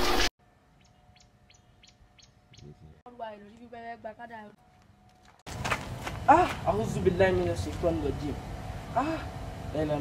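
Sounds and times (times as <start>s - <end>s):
faint bird chirps: 0.7s - 3.0s.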